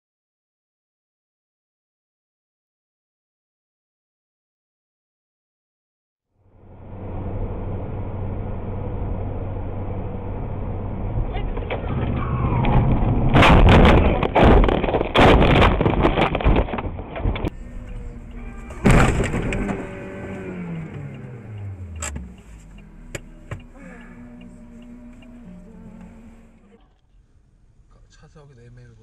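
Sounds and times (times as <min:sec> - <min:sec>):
car road noise: 0:06.4 - 0:29.0
car crash impacts and crunching: 0:11.6 - 0:20.1
falling tone: 0:17.5 - 0:26.9
sharp bang: 0:18.6 - 0:20.0
clicks: 0:19.0 - 0:25.4.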